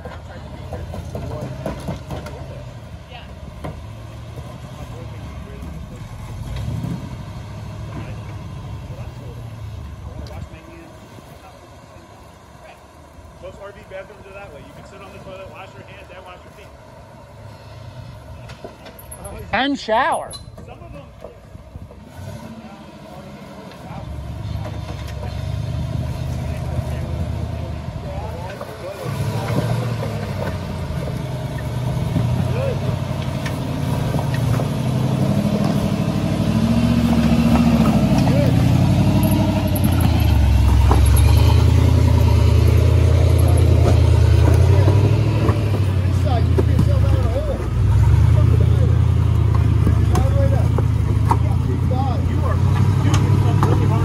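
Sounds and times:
off-road vehicle engine revving: 0.0 - 54.0.

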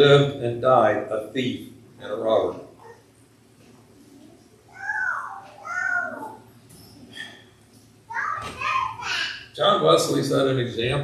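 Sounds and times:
high-pitched vocal cry: 4.7 - 6.4.

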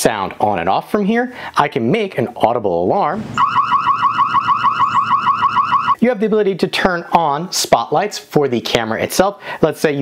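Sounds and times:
warbling alarm siren: 3.4 - 6.0.

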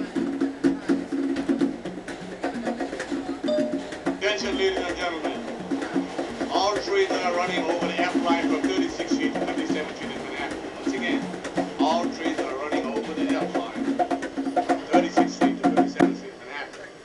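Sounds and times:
conga drums played by hand: 0.0 - 16.3.

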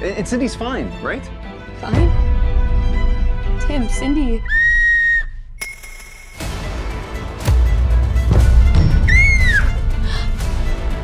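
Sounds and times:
soft background music: 0.0 - 4.5
child blowing toy whistle: 4.5 - 5.4, 9.1 - 9.7.

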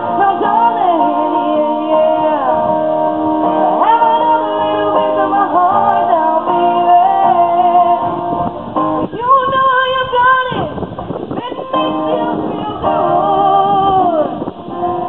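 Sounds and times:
woman singing into microphone: 0.0 - 15.0.

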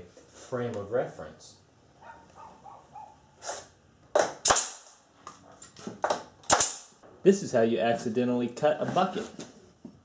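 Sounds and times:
pneumatic stapler firing: 4.1 - 5.0, 6.0 - 7.0.

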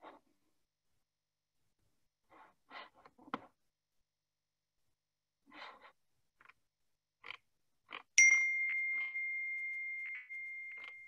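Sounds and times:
notification chime ding: 8.2 - 11.0.

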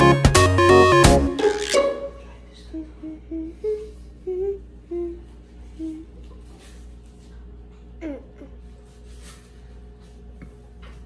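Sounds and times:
girl humming: 2.6 - 6.3, 8.0 - 8.6.

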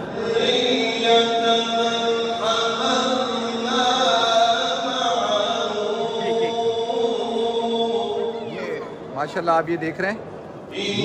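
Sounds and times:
person chanting recitation: 0.0 - 8.5, 10.7 - 11.0.

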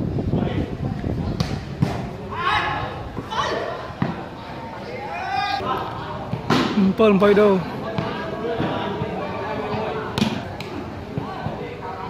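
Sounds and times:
spectators chattering: 0.3 - 12.0.

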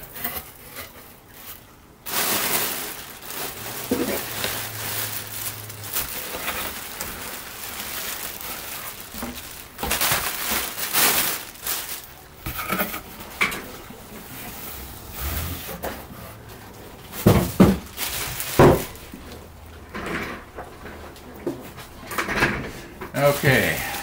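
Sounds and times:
plastic packing crinkling: 1.2 - 13.4, 17.0 - 19.5, 23.2 - 24.0.

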